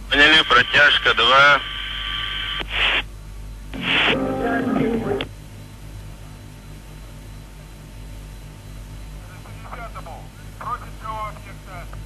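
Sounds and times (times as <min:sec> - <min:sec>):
steady hum: 0:00.0 - 0:12.0
garbled radio transmission: 0:00.1 - 0:03.1, 0:03.8 - 0:05.3, 0:09.3 - 0:12.0
radio static bursts: 0:00.2 - 0:03.1, 0:03.8 - 0:05.3.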